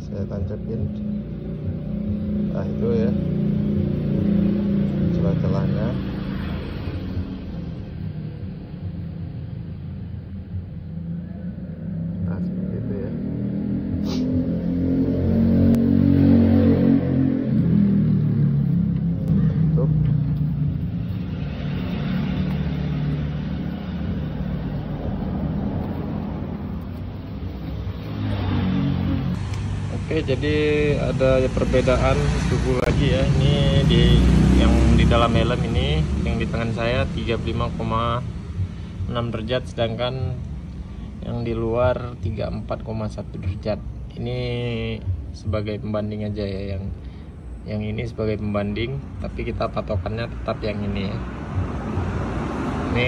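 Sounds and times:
vehicle engine passing by: 0:00.0 - 0:42.3, 0:47.6 - 0:53.0.

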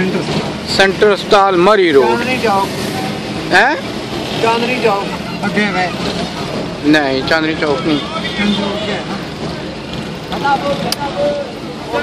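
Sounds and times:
faint voices: 0:00.0 - 0:12.0
street traffic: 0:00.0 - 0:12.0.

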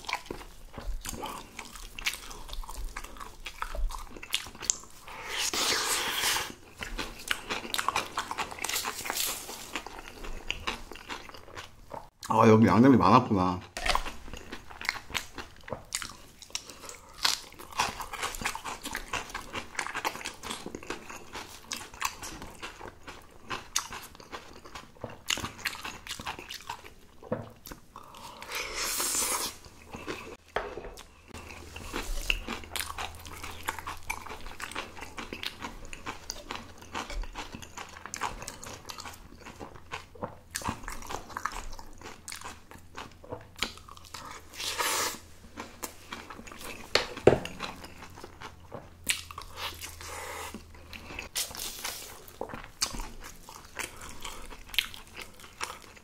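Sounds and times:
wet chewing crunches: 0:13.7 - 0:30.4, 0:31.0 - 0:56.0.

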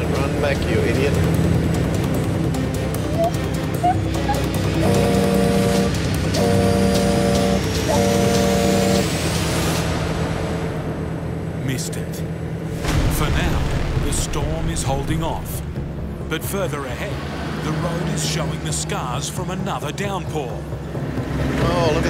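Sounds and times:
truck engine drone: 0:00.0 - 0:22.0
truck horn blasts: 0:03.8 - 0:09.4.

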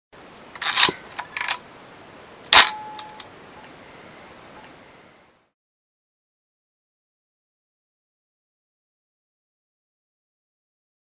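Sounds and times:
steady hiss: 0:00.2 - 0:05.5
short bursts of noise: 0:00.5 - 0:01.6.

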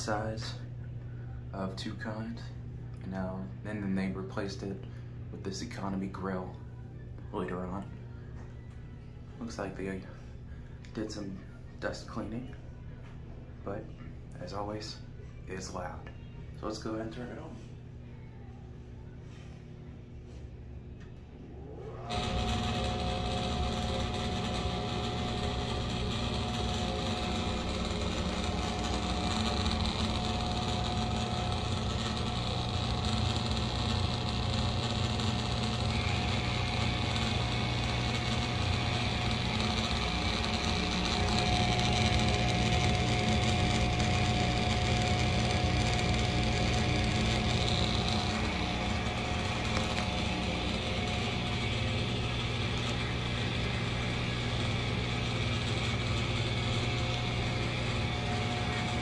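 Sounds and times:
exhaust fan running: 0:00.0 - 0:59.0.

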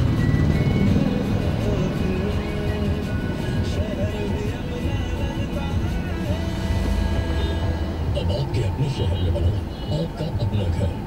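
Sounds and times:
car and traffic rumble: 0:00.0 - 0:11.0
music on car radio: 0:00.0 - 0:11.0.

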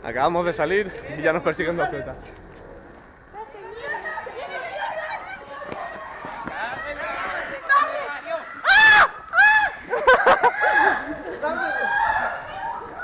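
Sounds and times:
high-pitched screams: 0:03.8 - 0:13.0
people shouting: 0:03.8 - 0:13.0.

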